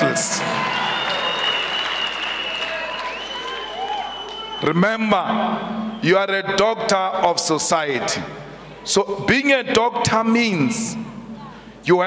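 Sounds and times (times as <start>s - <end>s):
crowd applauding: 0.0s - 4.6s.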